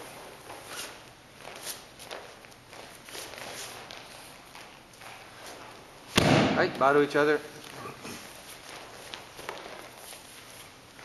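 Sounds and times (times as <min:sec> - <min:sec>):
bare feet on padded mats: 0:00.0 - 0:06.8, 0:07.5 - 0:11.0.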